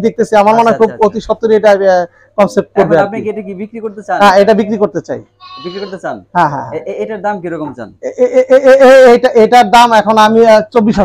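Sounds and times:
goat bleating: 5.4s - 6.2s.

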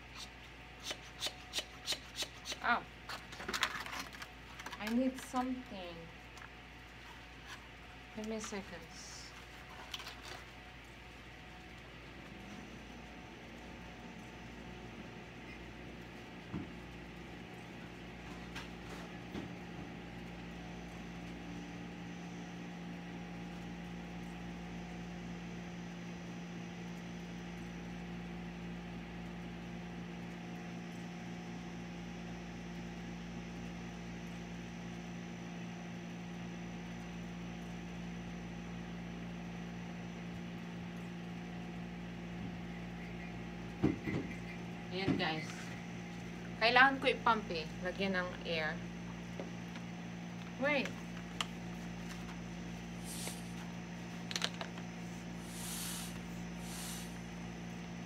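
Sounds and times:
machine hum with held tones: 0.0s - 58.0s.

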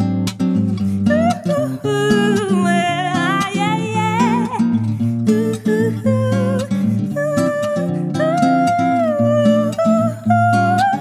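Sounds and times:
acoustic guitar: 0.0s - 11.0s
woman singing with vibrato: 1.0s - 11.0s.

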